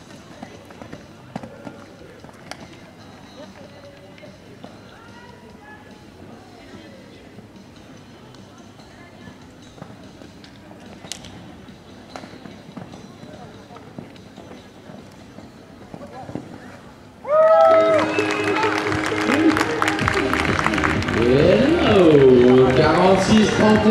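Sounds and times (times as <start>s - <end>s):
faint voices of onlookers: 15.7s - 23.9s.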